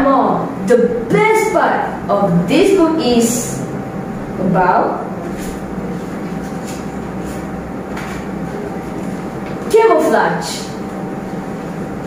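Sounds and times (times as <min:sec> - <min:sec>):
room rumble and hum: 0:00.0 - 0:12.0.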